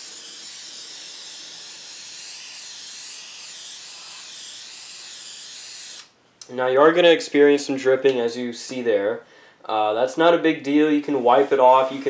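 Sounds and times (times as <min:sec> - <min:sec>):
spray paint can hissing: 0:00.0 - 0:06.1.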